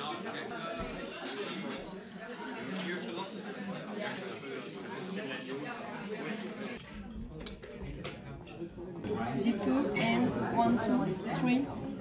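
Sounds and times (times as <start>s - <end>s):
murmur of voices: 0.0s - 12.0s
cutlery and china clinking: 1.1s - 1.9s, 6.8s - 11.5s.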